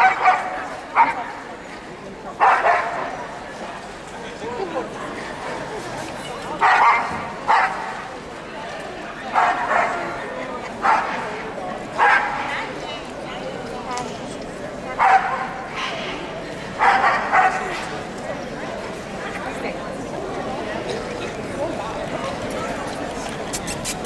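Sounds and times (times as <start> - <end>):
crowd chatter in a hall: 0.0 - 24.0.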